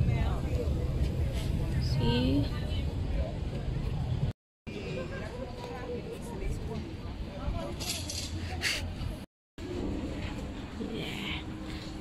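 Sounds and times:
voices of passers-by: 0.0s - 12.0s.

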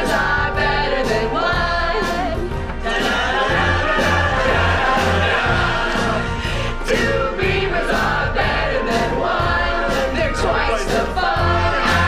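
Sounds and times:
women singing pop song: 0.0s - 4.8s, 5.4s - 12.0s
band with pulsing bass: 0.0s - 12.0s.

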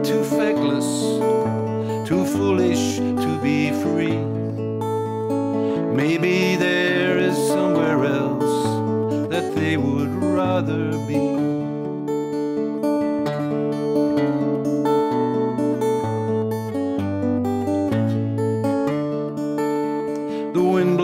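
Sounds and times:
person singing: 0.0s - 4.6s, 5.6s - 11.7s, 20.1s - 21.0s
acoustic guitar chords: 0.0s - 21.0s.

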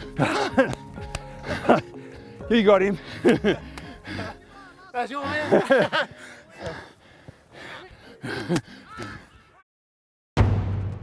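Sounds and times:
people gasping and laughing: 0.0s - 9.6s.

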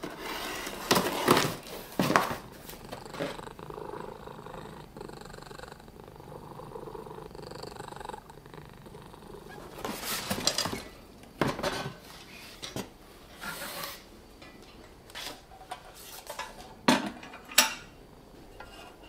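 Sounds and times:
metal lanterns rustling in a box: 0.0s - 3.3s, 9.8s - 14.0s
cat purring: 2.2s - 10.3s.

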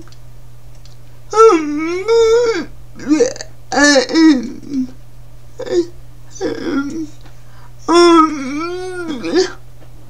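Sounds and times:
woman vocalizing: 1.3s - 5.0s, 5.6s - 7.2s, 7.9s - 9.6s.

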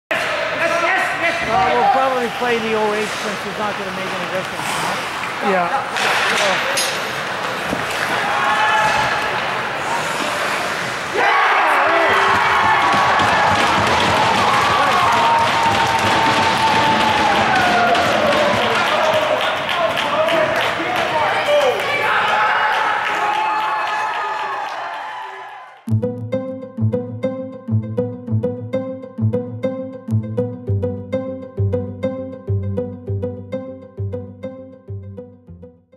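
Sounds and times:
crowd shouting and cheering: 0.1s - 2.6s, 7.8s - 25.9s
players' voices: 0.1s - 13.0s, 17.4s - 23.1s
hockey sticks and puck knocking: 4.0s - 9.3s, 12.1s - 19.3s.

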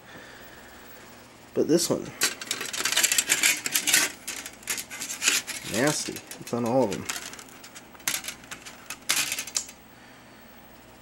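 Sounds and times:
metal plates clinking: 2.2s - 9.7s.

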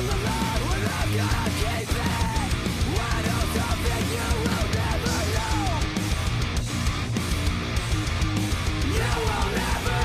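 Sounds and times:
metalcore band playing: 0.0s - 10.0s.

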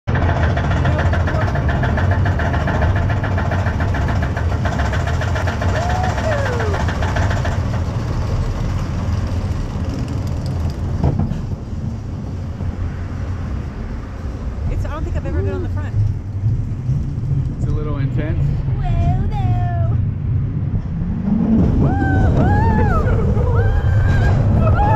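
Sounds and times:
roller coaster low rumble: 0.0s - 24.9s
lift chain clatter: 0.1s - 11.0s
roller coaster knock: 0.1s - 13.0s, 19.8s - 24.9s.

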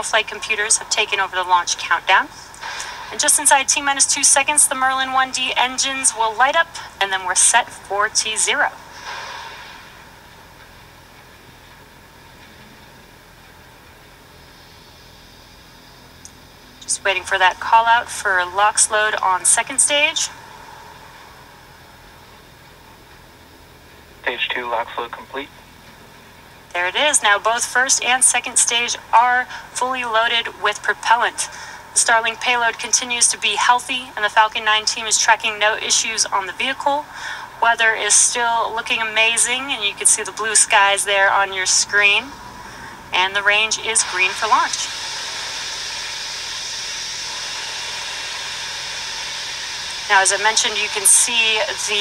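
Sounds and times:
steady faint hiss: 0.0s - 52.0s.

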